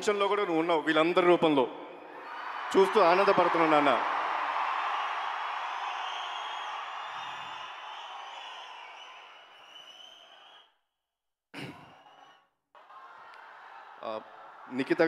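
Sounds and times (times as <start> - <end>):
large audience cheering: 1.9 - 10.7, 11.8 - 15.0.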